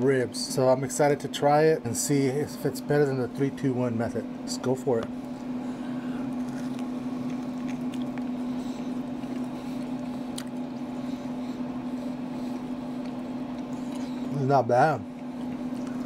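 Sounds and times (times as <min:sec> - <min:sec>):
person chewing: 0:05.2 - 0:14.3, 0:15.0 - 0:16.0.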